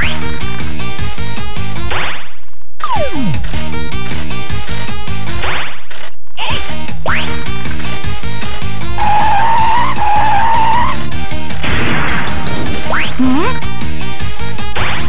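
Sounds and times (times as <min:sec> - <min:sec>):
electronic game music: 0:02.8 - 0:05.4, 0:06.4 - 0:15.0
warbling high tone: 0:13.2 - 0:13.6.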